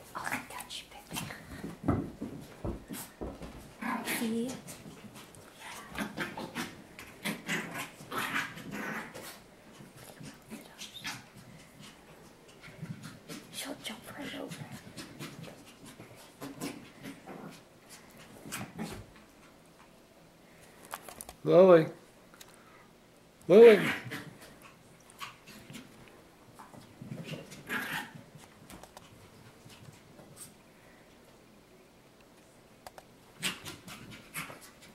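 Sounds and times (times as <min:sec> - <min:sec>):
paws and ball tapping on carpet: 0:01.1 - 0:03.7
puppy sounds: 0:03.8 - 0:19.6.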